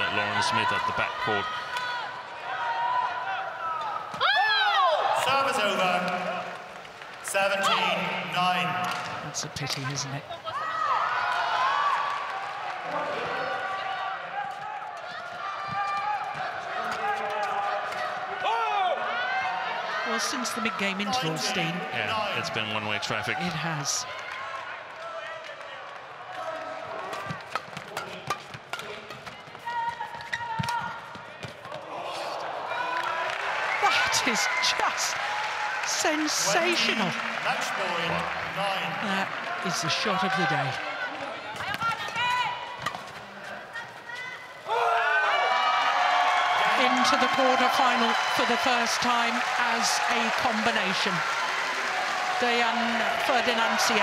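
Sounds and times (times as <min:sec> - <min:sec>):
shoes squeaking on court floor: 0:27.2 - 0:31.8
rackets hitting shuttlecock: 0:42.8 - 0:43.3.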